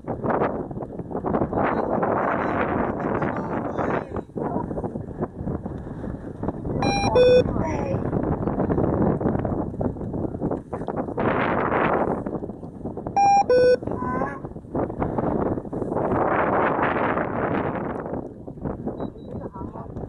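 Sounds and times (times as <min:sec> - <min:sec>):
wind buffeting microphone: 0:00.0 - 0:20.0
two-tone electronic beep: 0:06.8 - 0:07.6, 0:13.2 - 0:13.9.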